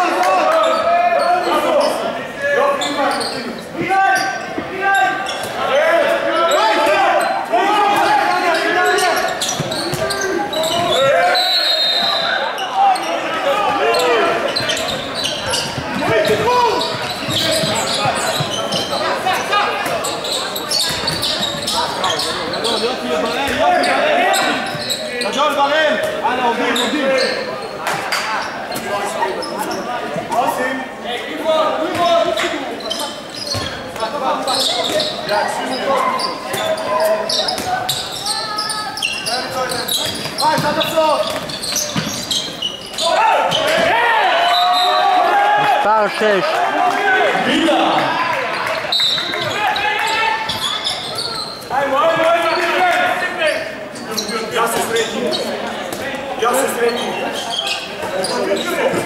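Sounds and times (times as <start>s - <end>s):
ball bouncing on wooden court: 9.5s - 11.0s
people shouting: 43.0s - 48.3s.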